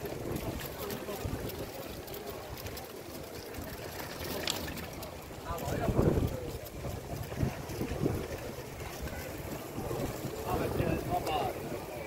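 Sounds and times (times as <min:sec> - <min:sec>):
faint voices of people: 0:00.0 - 0:12.0
wind buffeting microphone: 0:00.0 - 0:12.0.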